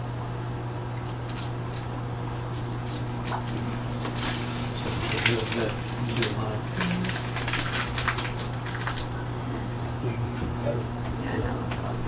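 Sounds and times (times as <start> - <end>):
steady low hum: 0.0 - 12.0
plastic packet crinkling: 1.0 - 9.2.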